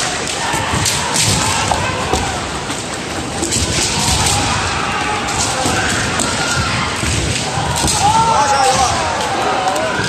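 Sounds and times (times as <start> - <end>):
bamboo swords striking: 0.0 - 9.3
crowd din: 0.0 - 10.0.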